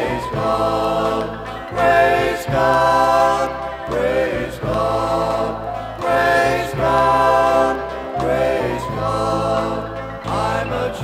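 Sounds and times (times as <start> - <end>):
male gospel quartet singing: 0.0 - 11.0.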